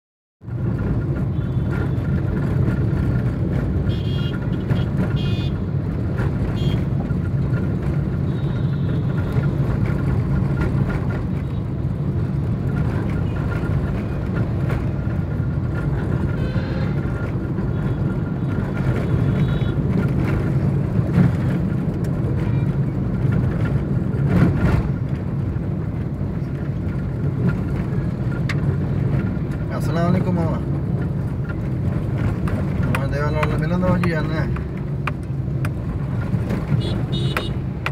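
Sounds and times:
passing traffic: 0.4 - 37.9
vehicle engine and road noise: 0.4 - 37.9.

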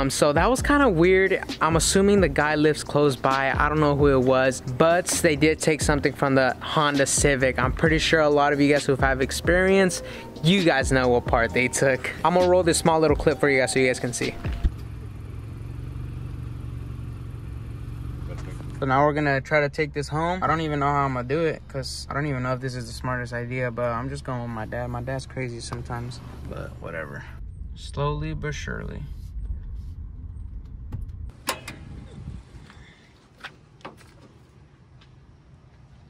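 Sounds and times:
car engine idling: 0.0 - 36.0
sharp click: 31.4 - 31.9.

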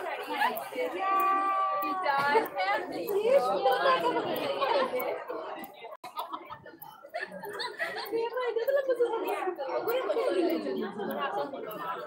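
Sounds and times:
voices talking and chattering: 0.0 - 12.0.

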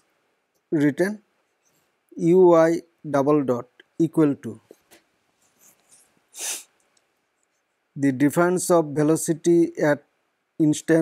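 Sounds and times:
man's sharp breath: 6.4 - 6.8.

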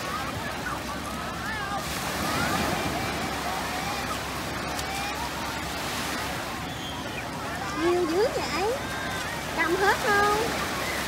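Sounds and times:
indistinct crowd voices: 0.0 - 11.0
small waves washing over sand: 0.0 - 11.0.

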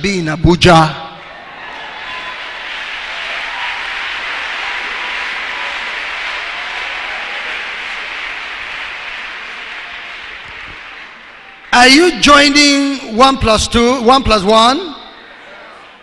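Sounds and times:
congregation applauding: 1.2 - 12.6.

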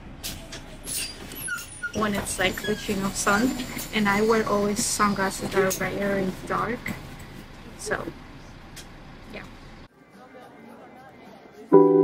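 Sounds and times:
bus interior running noise: 0.0 - 10.4.

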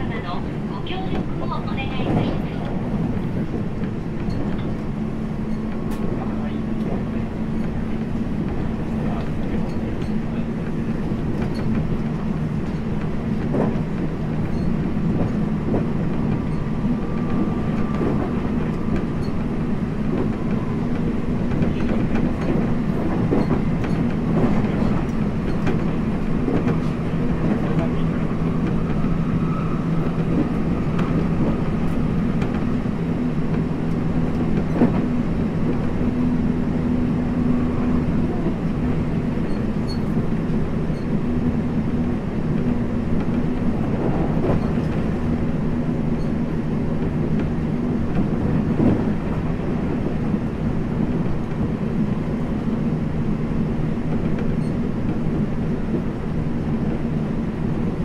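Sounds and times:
train wheels rumbling on rail: 0.0 - 58.0
rail-joint clicks: 0.5 - 29.1, 29.9 - 36.1, 38.0 - 41.5, 42.4 - 52.7, 53.9 - 56.2.

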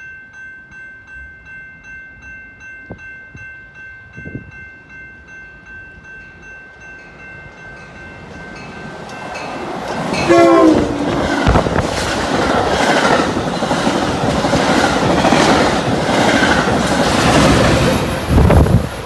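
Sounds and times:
train rumble: 7.5 - 19.0
wheels rattling on rails: 7.6 - 19.0
train horn blast: 10.1 - 11.6.

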